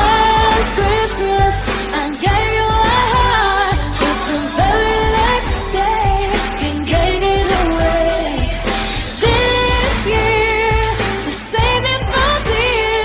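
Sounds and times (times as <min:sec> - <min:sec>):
pop song with singing: 0:00.0 - 0:13.0.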